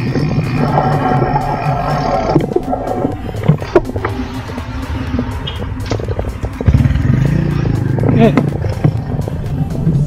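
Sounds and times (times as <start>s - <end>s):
background music: 0.0s - 10.0s
vehicle engines running: 0.0s - 10.0s.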